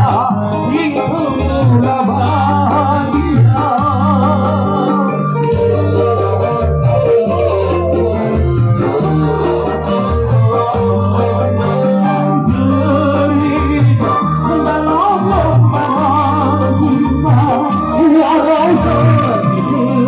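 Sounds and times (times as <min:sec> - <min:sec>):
guitar strumming: 0:00.0 - 0:20.0
organ keyboard melody: 0:00.0 - 0:20.0
steady bass line: 0:00.0 - 0:20.0.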